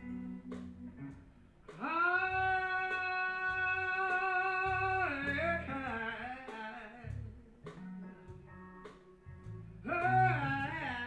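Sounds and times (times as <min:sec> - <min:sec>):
blues-rock band playing live: 0:00.0 - 0:11.0.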